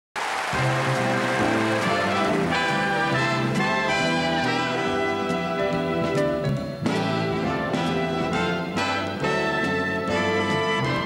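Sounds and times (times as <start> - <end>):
swing band music: 0.5 - 11.0.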